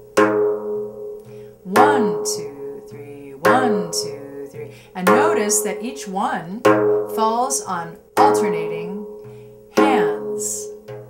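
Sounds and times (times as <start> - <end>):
frame drum strokes: 0.0 - 11.0
sustained backing music: 0.0 - 11.0.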